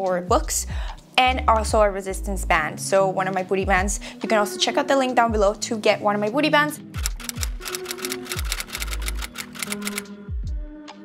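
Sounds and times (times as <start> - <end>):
background music: 0.0 - 11.0
typewriter key clicks: 7.0 - 10.0.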